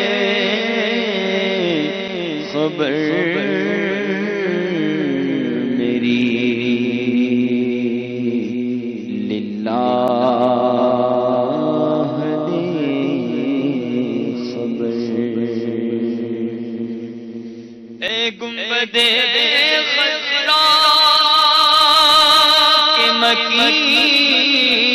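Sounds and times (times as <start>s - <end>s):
man singing into microphone: 0.0s - 17.2s, 18.0s - 24.9s.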